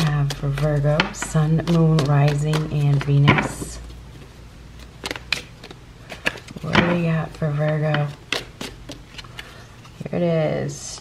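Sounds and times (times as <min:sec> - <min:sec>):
cards being shuffled by hand: 0:00.0 - 0:10.2
sharp card clicks and taps: 0:04.8 - 0:06.9.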